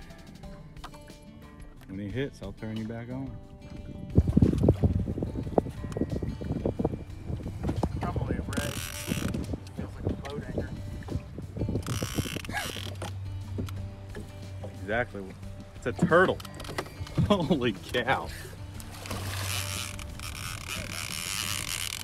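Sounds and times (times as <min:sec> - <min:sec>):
fishing reel clicking and rattling: 0:08.5 - 0:09.6, 0:11.8 - 0:13.8, 0:16.3 - 0:17.2, 0:18.8 - 0:22.0.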